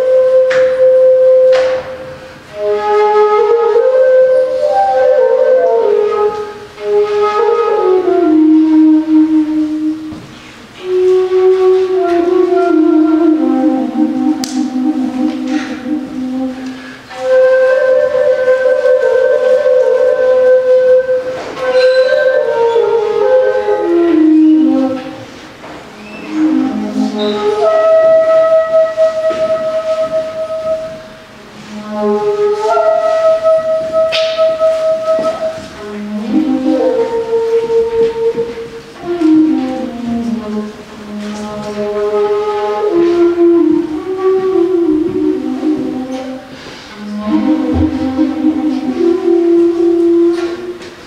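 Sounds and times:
flute playing slow melody: 0:00.0 - 0:51.0.

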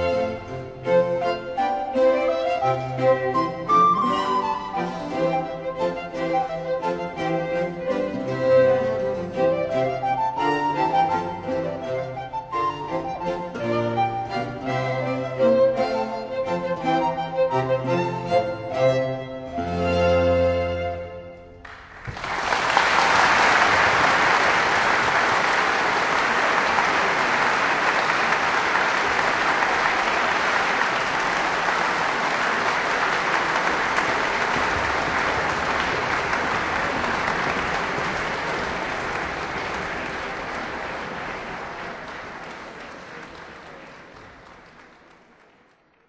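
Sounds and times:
audience applauding: 0:21.6 - 0:46.0.

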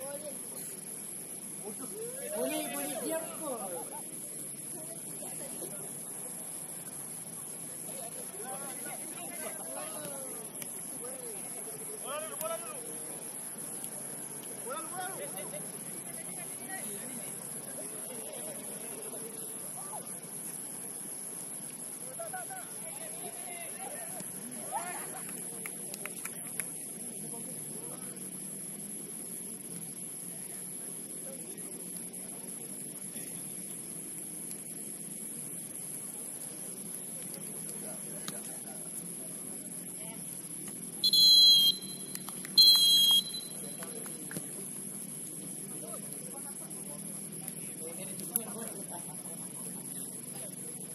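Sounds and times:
pea whistle blasts: 0:41.0 - 0:43.6.

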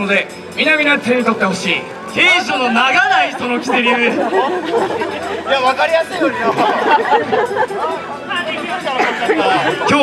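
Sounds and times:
men talking into microphones: 0:00.0 - 0:10.0
man laughing: 0:03.6 - 0:05.3.

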